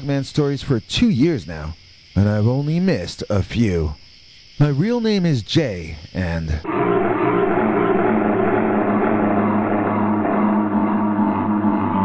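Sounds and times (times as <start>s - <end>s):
low drone of held tones: 6.6s - 12.0s.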